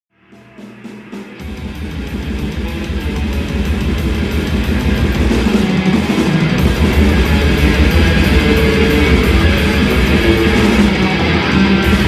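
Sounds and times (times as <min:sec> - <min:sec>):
live metal band playing loud: 0:00.3 - 0:12.0.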